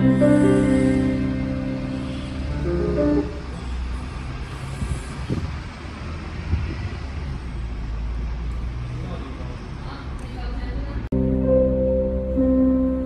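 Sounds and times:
song's held note: 0:00.0 - 0:03.5, 0:11.1 - 0:13.0
low rumble of city traffic: 0:00.0 - 0:13.0.

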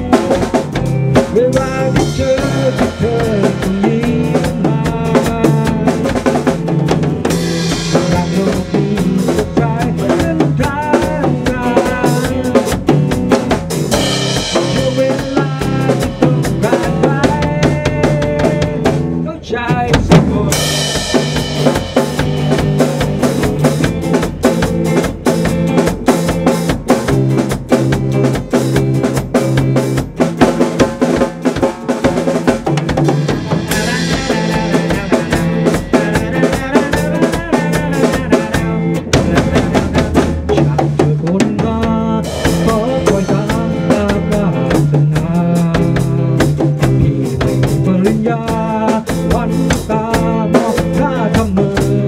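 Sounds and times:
drum kit playing: 0:00.0 - 0:52.0.

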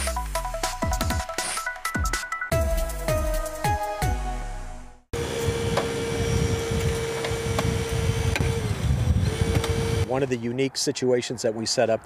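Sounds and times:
motor humming: 0:05.2 - 0:10.1.

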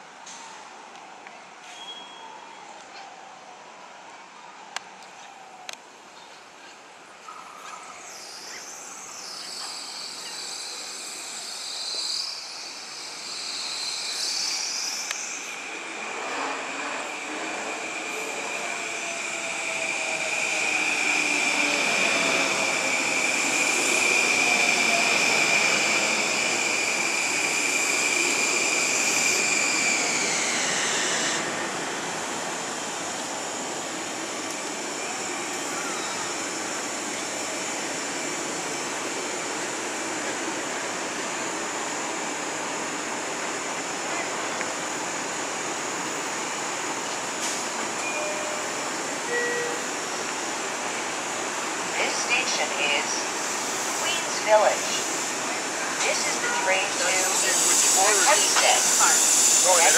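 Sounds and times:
insects chirping: 0:08.0 - 0:17.2
standing train rushing hum: 0:08.2 - 0:59.9.

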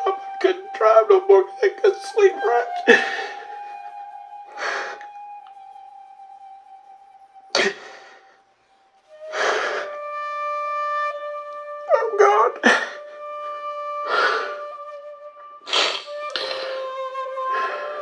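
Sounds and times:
man crying: 0:00.0 - 0:04.0, 0:11.9 - 0:13.2
soft background music: 0:00.0 - 0:18.0.

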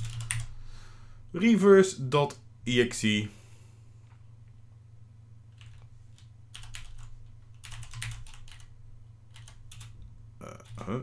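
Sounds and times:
computer keyboard typing: 0:00.0 - 0:00.5, 0:05.5 - 0:08.7, 0:09.3 - 0:11.0.

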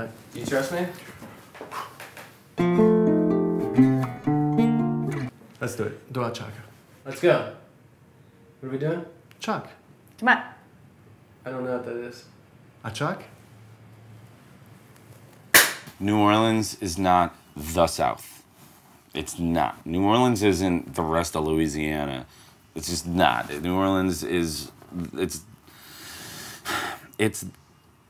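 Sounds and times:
acoustic guitar strumming chords: 0:02.6 - 0:05.3.

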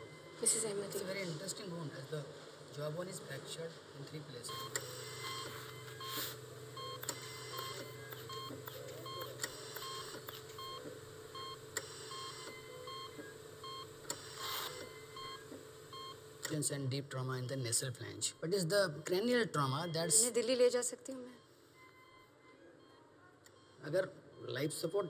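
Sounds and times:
patient monitor beeps: 0:00.0 - 0:02.3, 0:04.3 - 0:25.0
steady equipment hum: 0:00.0 - 0:25.0.

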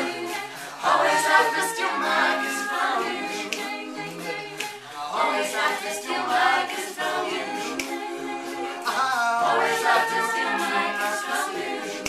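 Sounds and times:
a cappella group singing: 0:00.0 - 0:12.0.

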